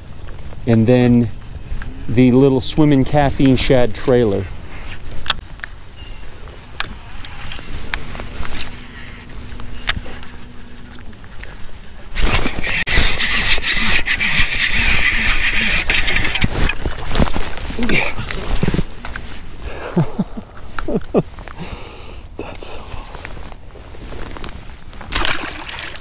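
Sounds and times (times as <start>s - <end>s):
fishing reel whirring and clicking: 12.6s - 16.5s.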